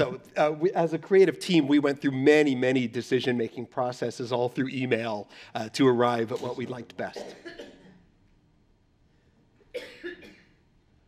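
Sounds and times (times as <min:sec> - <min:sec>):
person coughing: 0:06.2 - 0:08.1, 0:09.7 - 0:10.6.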